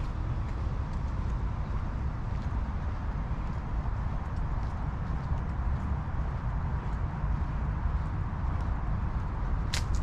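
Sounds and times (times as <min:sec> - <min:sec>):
footsteps on pavement: 0:00.0 - 0:10.0
wind buffeting microphone: 0:00.0 - 0:10.0.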